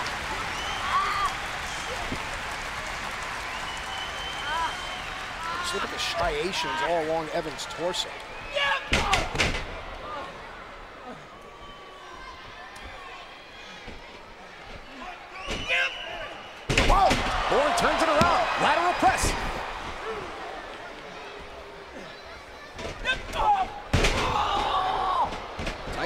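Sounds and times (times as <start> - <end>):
crowd background: 0.0 - 26.0.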